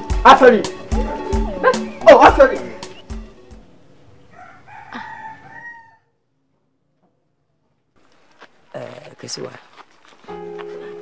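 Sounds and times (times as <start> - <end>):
rooster crowing: 4.2 - 6.2.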